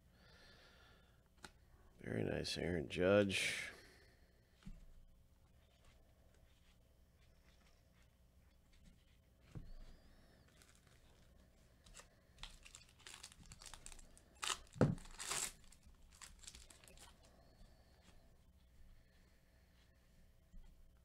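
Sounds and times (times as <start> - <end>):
foil wrapper tearing and crinkling: 11.9 - 17.2.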